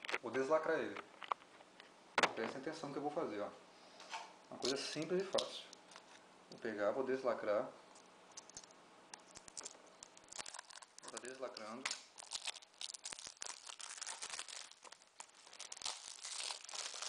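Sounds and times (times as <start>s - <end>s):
plastic wrap tearing and crinkling: 7.9s - 17.0s.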